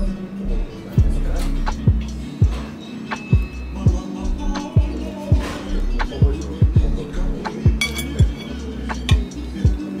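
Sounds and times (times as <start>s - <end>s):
hip-hop beat music: 0.0s - 10.0s
fork clinking on plate: 7.8s - 9.3s.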